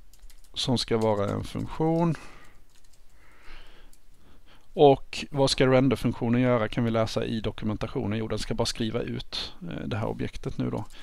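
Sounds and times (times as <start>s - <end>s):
computer keyboard typing: 0.0s - 3.2s.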